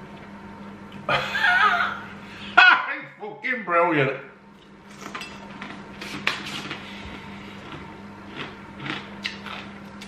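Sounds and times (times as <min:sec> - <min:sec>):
low electrical hum: 0:00.0 - 0:10.0
man chewing food: 0:04.5 - 0:10.0
wet lip-smacking clicks: 0:09.2 - 0:10.0.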